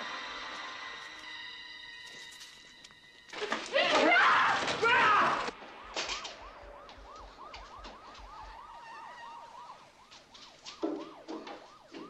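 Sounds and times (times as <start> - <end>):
police siren yelping: 4.9 - 12.0.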